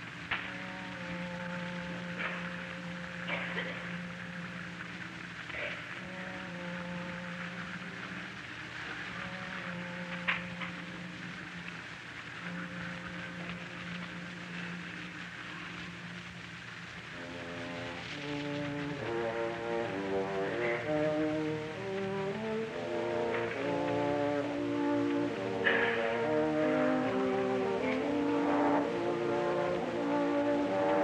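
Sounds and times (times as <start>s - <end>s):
old recording surface hiss: 0.0s - 31.0s
orchestra playing: 0.0s - 31.0s.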